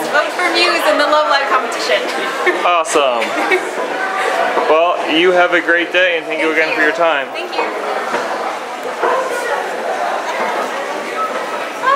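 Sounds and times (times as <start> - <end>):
indistinct background voices: 0.0 - 11.9.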